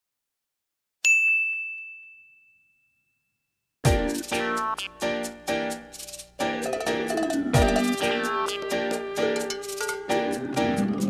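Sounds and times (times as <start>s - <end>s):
high bell-like ding: 1.0s - 3.4s.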